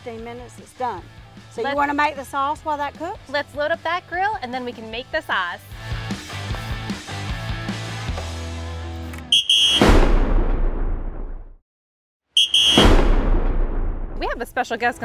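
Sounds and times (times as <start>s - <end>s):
background music with bass line: 0.0s - 10.4s
buzzer-like tone: 9.4s - 9.8s, 12.4s - 12.9s
deep boom: 9.8s - 11.6s, 12.6s - 14.5s.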